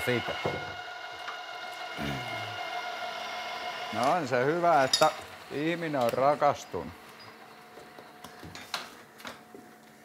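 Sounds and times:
drill press whining: 0:00.0 - 0:10.0
short low vocal sound: 0:02.0 - 0:02.6.

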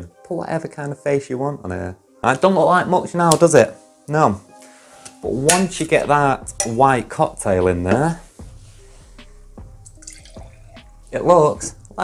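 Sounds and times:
liquid pouring and dripping: 0:09.8 - 0:10.9.

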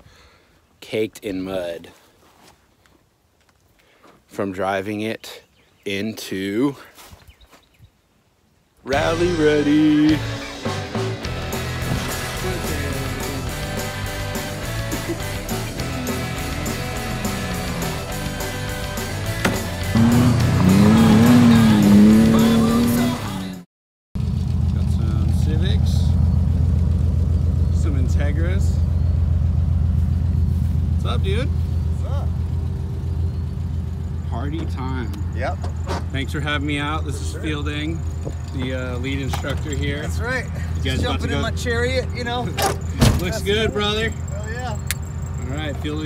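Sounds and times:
car engine droning: 0:09.0 - 0:23.6, 0:24.2 - 0:46.0
music with steady beat: 0:10.1 - 0:23.4.

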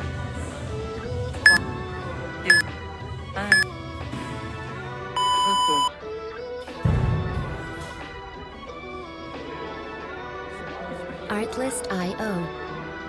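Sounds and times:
background music: 0:00.0 - 0:13.0
long low timer beep: 0:05.2 - 0:05.9
timer beeps: 0:05.2 - 0:05.9.

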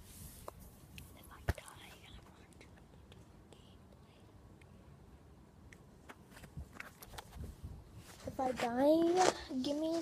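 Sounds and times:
faint whispering: 0:01.0 - 0:04.5.

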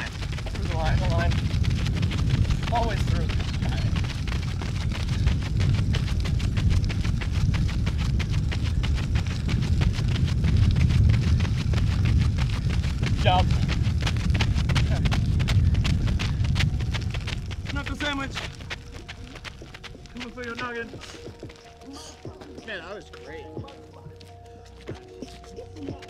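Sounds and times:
steady low rumble: 0:00.0 - 0:25.1
footsteps crunching on gravel: 0:00.0 - 0:26.0
runners breathing: 0:00.0 - 0:26.0.

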